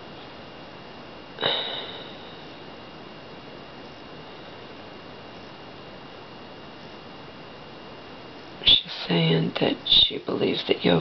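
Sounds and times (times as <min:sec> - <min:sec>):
faint high-pitched whine: 0:00.0 - 0:11.0.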